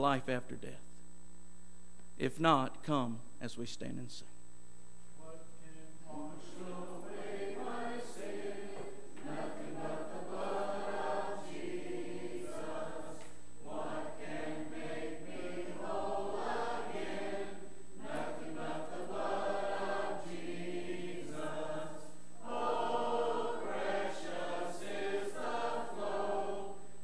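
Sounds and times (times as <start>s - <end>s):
congregation singing a hymn: 5.6s - 27.0s.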